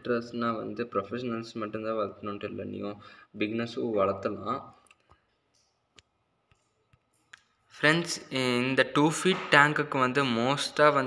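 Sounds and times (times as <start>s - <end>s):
man speaking: 0.0s - 4.8s, 7.7s - 11.0s.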